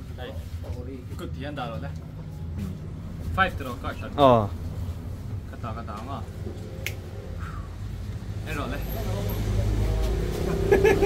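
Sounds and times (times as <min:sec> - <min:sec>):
steady low hum: 0:00.0 - 0:08.5
sharp snap: 0:06.8 - 0:07.1.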